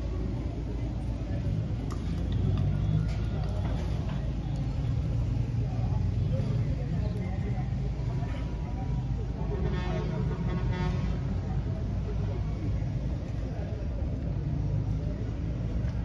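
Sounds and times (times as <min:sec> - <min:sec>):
road vehicle rumble: 0:00.0 - 0:16.0.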